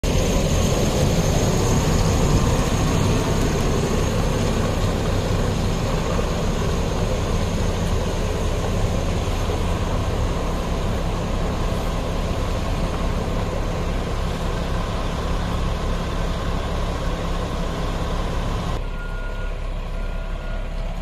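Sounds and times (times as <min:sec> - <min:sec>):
diesel engine running: 0:00.0 - 0:21.0.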